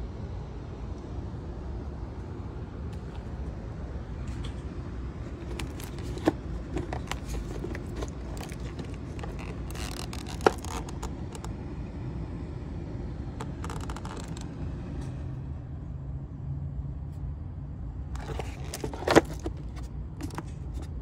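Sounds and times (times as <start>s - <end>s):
hands rustling plastic parts: 5.2s - 11.5s, 18.2s - 21.0s
plastic parts clicking: 5.3s - 11.5s, 18.2s - 20.9s.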